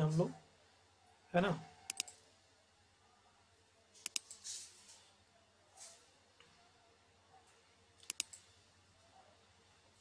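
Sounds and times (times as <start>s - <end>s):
mouse button clicking: 1.9s - 2.2s, 4.0s - 4.3s, 8.0s - 8.4s.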